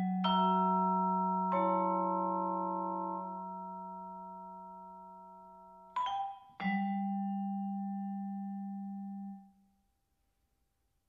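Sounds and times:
vibraphone notes ringing: 0.0s - 8.8s.

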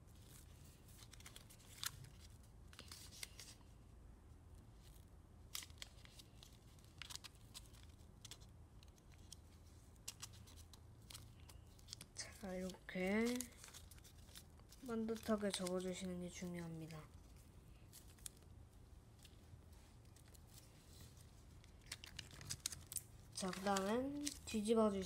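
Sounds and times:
foil paper rustling and crackling: 10.1s - 16.4s, 21.8s - 25.0s.

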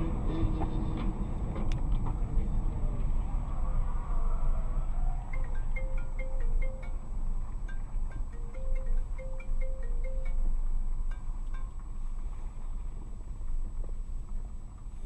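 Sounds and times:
car driving rumble: 0.0s - 15.0s
bell-like chime tune: 5.4s - 10.5s.

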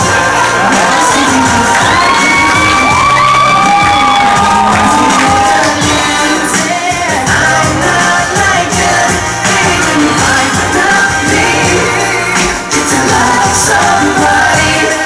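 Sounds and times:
audience cheering and whooping: 0.0s - 6.7s
loud pop song with singing: 0.0s - 15.0s.

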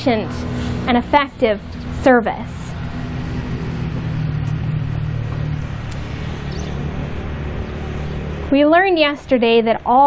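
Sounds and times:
motor engine running: 0.0s - 10.0s.

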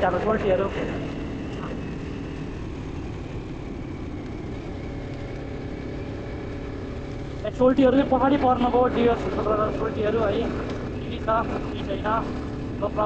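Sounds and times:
motorcycle engine hum: 0.0s - 13.0s
wind and road noise: 0.0s - 13.0s.

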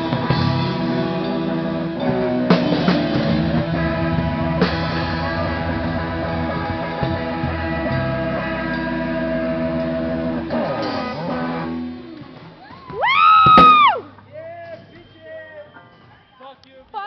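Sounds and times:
electric guitar chords: 0.0s - 12.6s
rock band playing live: 0.0s - 14.2s.

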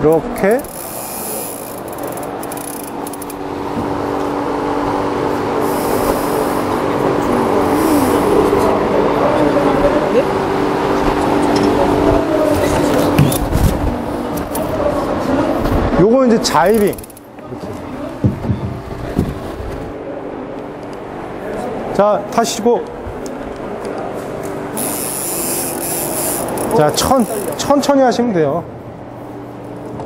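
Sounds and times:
electric motors humming: 0.0s - 15.7s, 16.5s - 21.5s, 22.9s - 28.0s.

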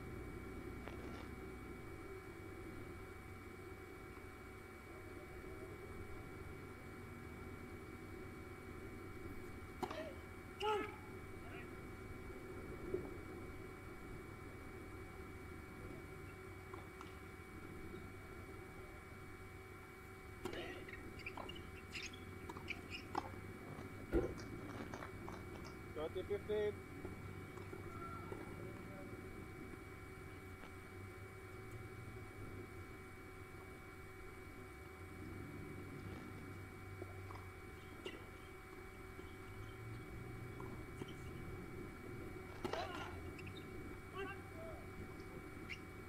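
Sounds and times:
distant voices: 0.0s - 46.0s
electrical hum: 0.0s - 46.0s.

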